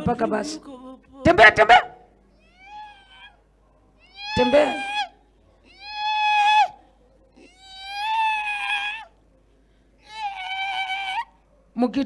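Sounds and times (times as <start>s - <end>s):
woman wailing into a microphone: 4.2s - 5.1s.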